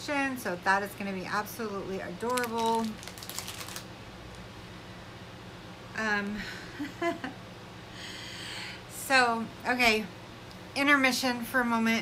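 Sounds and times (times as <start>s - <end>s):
faint low hum: 0.0s - 12.0s
plastic packaging crinkling: 2.1s - 4.4s.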